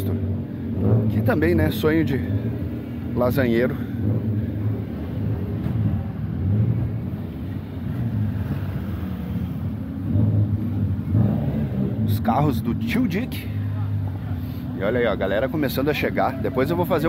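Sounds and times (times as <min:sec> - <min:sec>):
car engines rumbling: 0:00.0 - 0:17.0.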